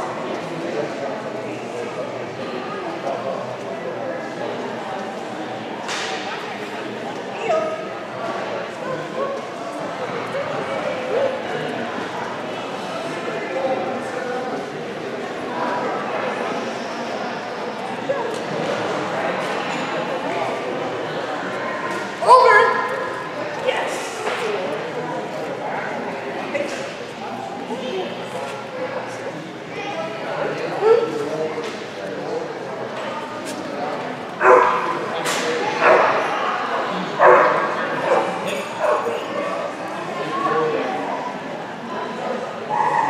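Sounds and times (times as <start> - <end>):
murmur of voices echoing: 0.0 - 43.0
dog barking in large hall: 11.0 - 11.6, 34.4 - 39.7, 42.7 - 43.0.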